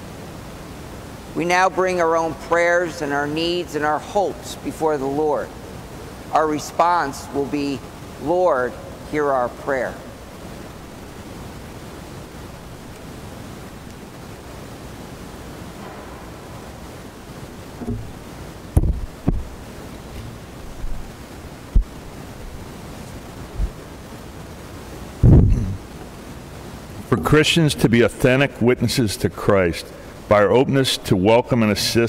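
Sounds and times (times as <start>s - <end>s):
room noise hiss: 0.0s - 32.0s
low thud: 17.8s - 18.2s, 18.8s - 19.5s
soft knocks: 17.8s - 18.2s, 18.8s - 19.5s.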